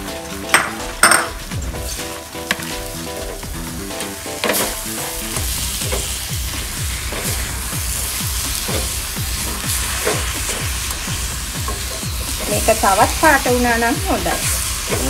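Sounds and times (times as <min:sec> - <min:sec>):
background music: 0:00.0 - 0:15.0
coconut sizzling: 0:00.0 - 0:15.0.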